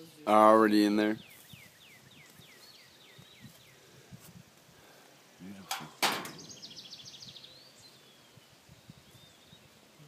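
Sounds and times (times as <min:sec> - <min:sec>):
birds chirping: 0:00.0 - 0:04.1, 0:04.7 - 0:10.0.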